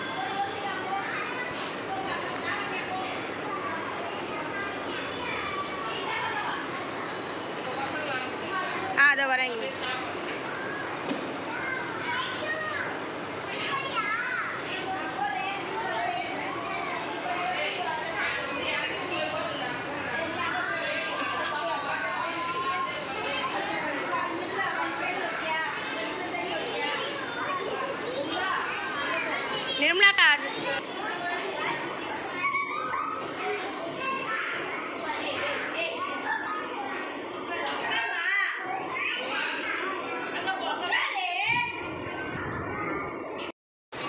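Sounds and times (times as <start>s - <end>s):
children chattering and calling: 0.0s - 44.0s.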